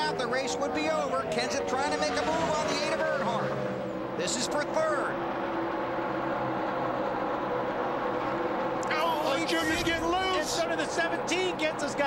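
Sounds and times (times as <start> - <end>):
racing car engines droning: 0.0 - 12.0.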